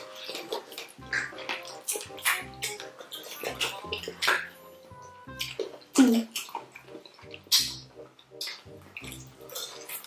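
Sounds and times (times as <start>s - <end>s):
background music with low beat: 0.0s - 10.0s
wet chewing and sucking: 0.0s - 10.0s.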